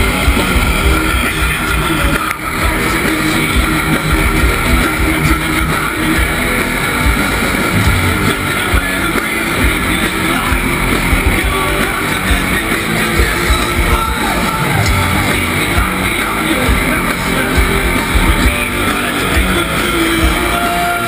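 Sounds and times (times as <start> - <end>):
distorted electric guitars: 0.0 - 21.0
drums: 0.0 - 21.0.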